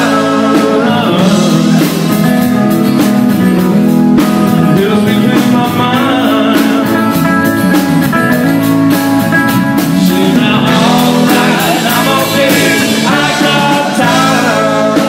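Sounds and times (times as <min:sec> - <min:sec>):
man singing: 0:00.0 - 0:02.7, 0:04.2 - 0:07.7, 0:09.7 - 0:15.0
drum beat: 0:00.0 - 0:15.0
guitars playing: 0:00.0 - 0:15.0.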